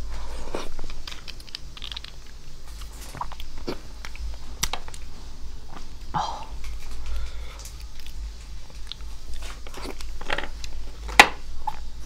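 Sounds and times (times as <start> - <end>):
wet chewing mouth clicks: 0.6 - 2.4.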